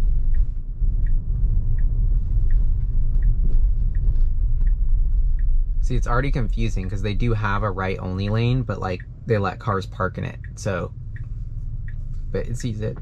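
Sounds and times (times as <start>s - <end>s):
car cabin road noise: 0.0s - 13.0s
turn signal ticking: 0.0s - 13.0s.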